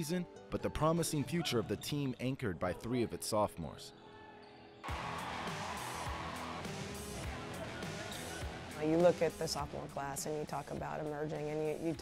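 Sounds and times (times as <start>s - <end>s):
soft background music: 0.0s - 12.0s
arena noise: 4.0s - 9.7s.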